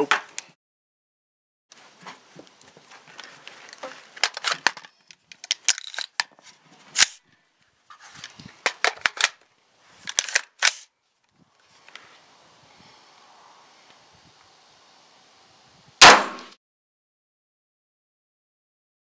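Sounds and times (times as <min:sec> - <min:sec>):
rifle action metallic clicks: 0:04.2 - 0:06.4, 0:10.1 - 0:10.9.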